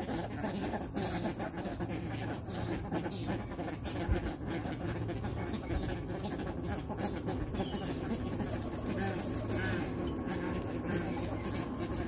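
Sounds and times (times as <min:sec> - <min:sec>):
birds soft low calls: 0:00.0 - 0:12.0
faint high bird chirp: 0:07.6 - 0:08.2.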